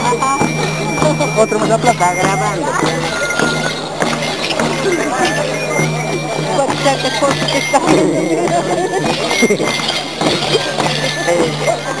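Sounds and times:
crowd talking and calling out: 0.0s - 12.0s
festive dance music: 0.0s - 12.0s.

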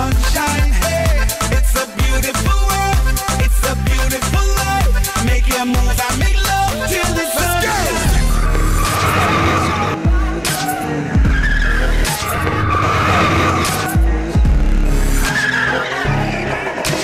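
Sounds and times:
music with heavy bass beat: 0.0s - 17.0s
car tyres squealing: 6.8s - 14.3s, 15.0s - 17.0s.

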